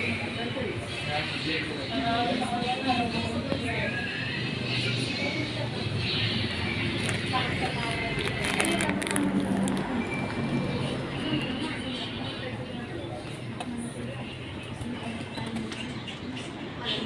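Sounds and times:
indistinct voices: 0.0 - 17.0.

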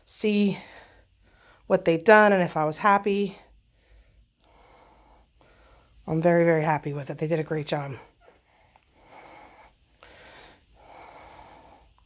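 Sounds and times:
person breathing close to microphone: 0.0 - 1.7, 3.3 - 6.1, 7.9 - 12.0.

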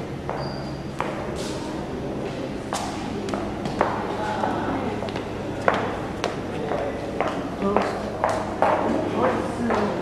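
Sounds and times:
murmur of voices: 1.0 - 10.0.

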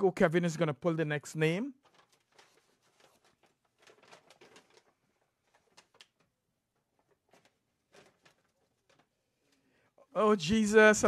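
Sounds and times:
paper slips rustling: 1.6 - 9.6.

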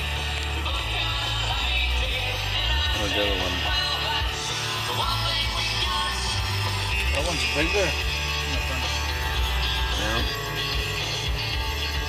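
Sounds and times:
rock music with guitar: 0.0 - 12.0.

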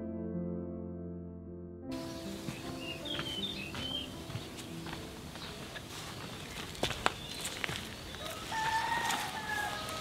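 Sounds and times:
rooster crowing: 8.2 - 10.0.

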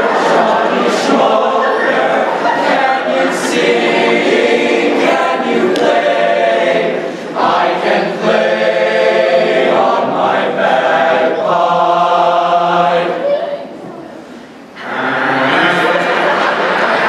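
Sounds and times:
male choir singing: 0.0 - 13.3, 14.8 - 17.0.

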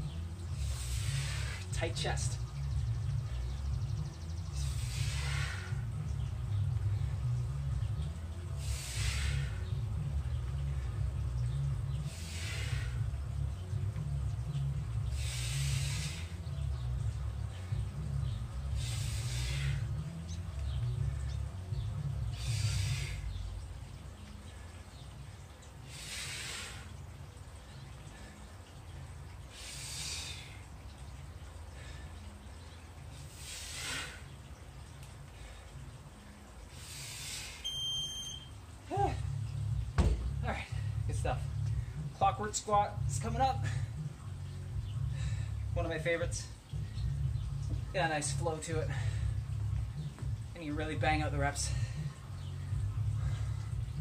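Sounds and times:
low rumble: 0.0 - 24.7, 38.9 - 54.0
man exhaling forcefully: 4.7 - 5.8, 8.6 - 9.7, 12.1 - 13.0, 15.1 - 16.3, 18.8 - 19.9, 22.4 - 23.3, 25.9 - 26.9, 33.4 - 34.2, 36.8 - 37.6.

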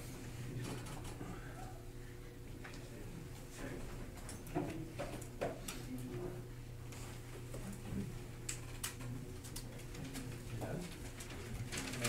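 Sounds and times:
faint low murmuring: 0.0 - 12.0.

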